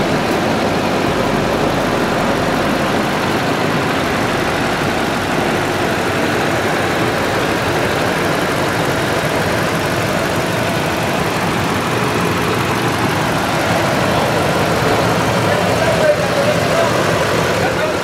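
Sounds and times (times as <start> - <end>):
car engine idling: 0.0 - 18.0.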